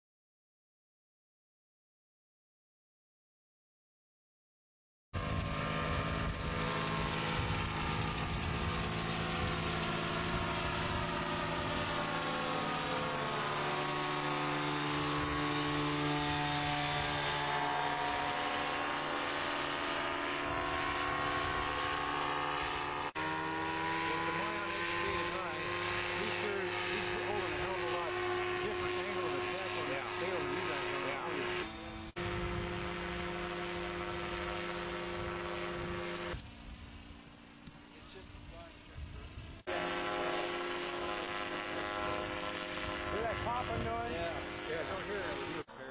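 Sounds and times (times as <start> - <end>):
engine and propeller droning overhead: 5.2 - 45.9.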